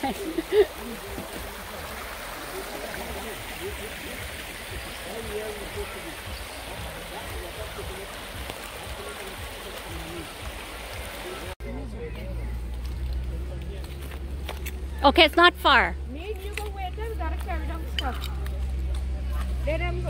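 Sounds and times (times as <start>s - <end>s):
river water rushing over stones: 0.0s - 11.6s
faint distant voices: 0.0s - 15.0s.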